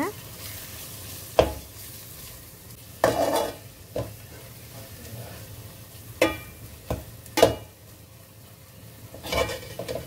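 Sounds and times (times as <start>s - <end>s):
faint sizzle: 0.0s - 10.0s
spoon stirring in a metal pot: 3.0s - 4.5s, 9.2s - 10.0s.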